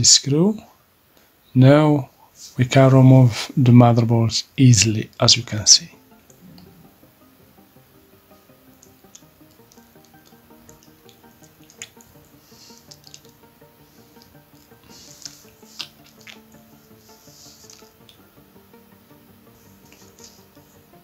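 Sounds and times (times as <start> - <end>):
faint background music: 0.0 - 21.0.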